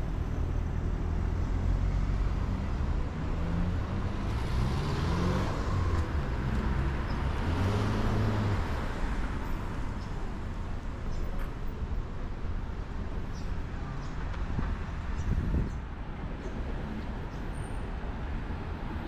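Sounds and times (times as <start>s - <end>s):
cars driving past: 1.1s - 11.7s.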